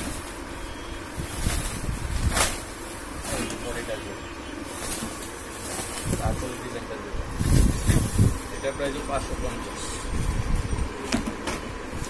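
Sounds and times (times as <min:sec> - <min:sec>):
steady low rumble: 0:00.4 - 0:11.1.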